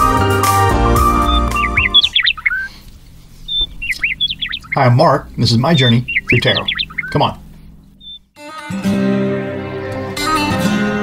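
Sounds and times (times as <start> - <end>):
organ music: 0.0 - 2.3
bird chirping sliding notes: 0.0 - 8.3.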